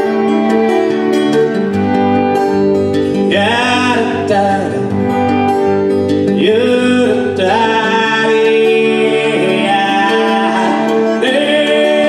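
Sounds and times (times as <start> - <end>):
acoustic guitar strumming: 0.0 - 12.0
violin melody: 0.0 - 12.0.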